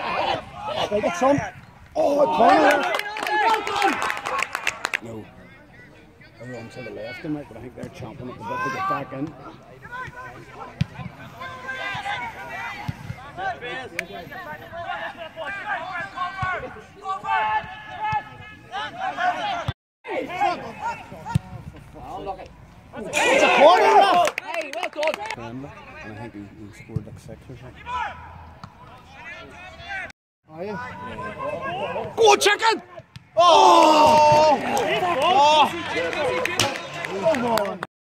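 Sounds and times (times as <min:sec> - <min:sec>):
football players shouting: 0:00.0 - 0:04.8, 0:08.2 - 0:26.2, 0:27.8 - 0:37.8.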